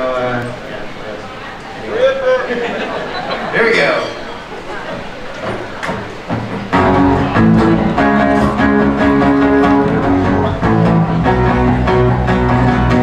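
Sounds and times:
acoustic guitars strumming: 4.0s - 13.0s
bass guitar: 6.3s - 13.0s.

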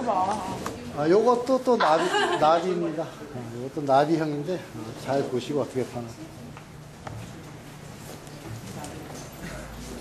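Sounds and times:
murmur of room chatter: 0.0s - 10.0s.

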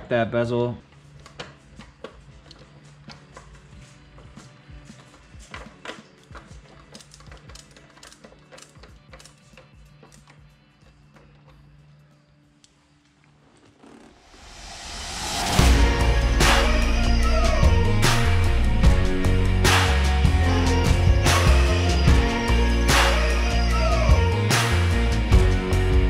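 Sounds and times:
music: 0.0s - 26.0s.

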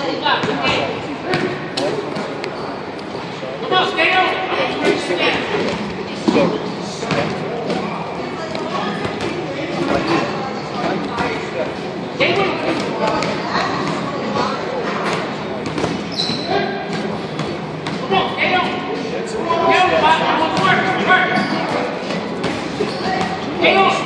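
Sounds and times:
voices echoing in gym hall: 0.0s - 24.0s.

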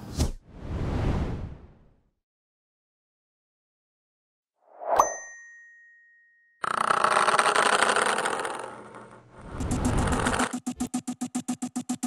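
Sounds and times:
notification bell ding: 5.0s - 6.6s.

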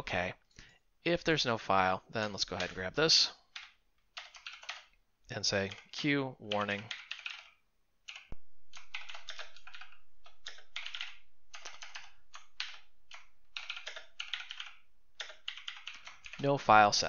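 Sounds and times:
typing on computer keyboard: 3.5s - 5.0s, 5.6s - 16.8s.

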